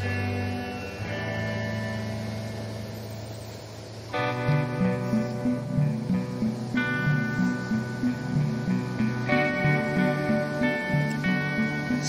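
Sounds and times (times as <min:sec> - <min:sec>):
soft ringing chord: 0:00.0 - 0:12.0.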